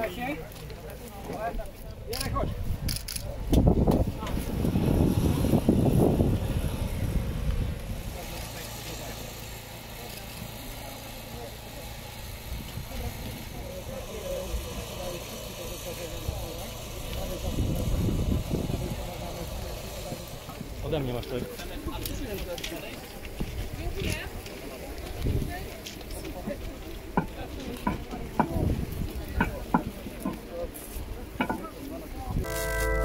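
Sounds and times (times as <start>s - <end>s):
indistinct voices: 31.4s - 33.0s.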